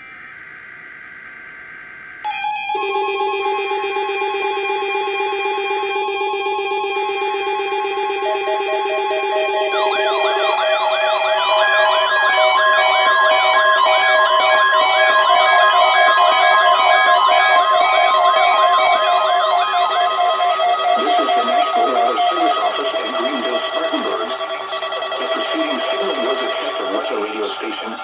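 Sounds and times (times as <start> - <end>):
steady alarm tones: 2.2 - 28.0
warbling siren-like tones: 2.2 - 28.0
pulsing beep: 2.3 - 28.0.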